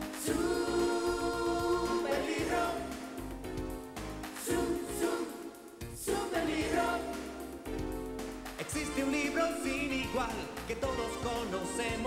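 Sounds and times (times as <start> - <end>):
instrumental backing: 0.0 - 12.0
choir singing a held chord: 0.1 - 3.4, 4.4 - 7.8.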